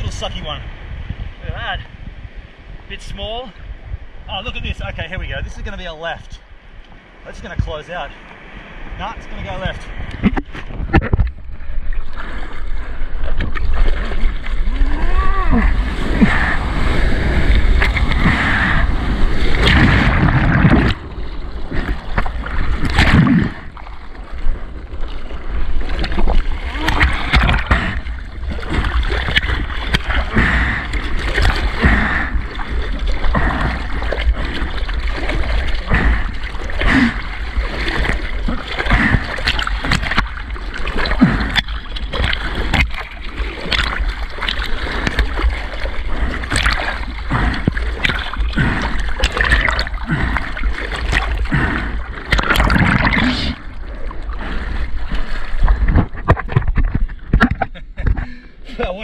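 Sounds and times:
low rumble of moving water: 0:00.0 - 0:59.0
arms paddling in water: 0:09.5 - 0:59.0
whitewater rushing: 0:14.1 - 0:24.4.

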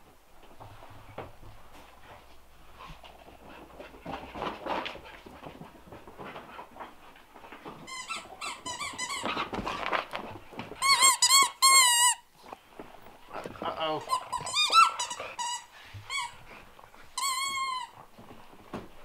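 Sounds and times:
rubber dog toy squeaking: 0:07.9 - 0:09.9, 0:10.8 - 0:12.2, 0:14.0 - 0:16.4, 0:17.2 - 0:18.0
soft scuffling: 0:15.7 - 0:19.0.

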